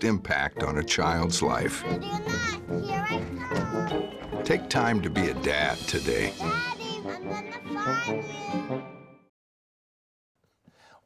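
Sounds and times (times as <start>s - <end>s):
background music: 0.0s - 9.3s
girl calling: 1.8s - 4.1s, 6.4s - 8.7s.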